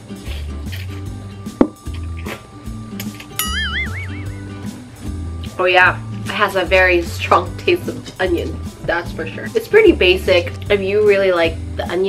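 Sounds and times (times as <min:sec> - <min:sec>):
background music with steady beat: 0:00.0 - 0:12.0
warbling tone: 0:03.4 - 0:04.8.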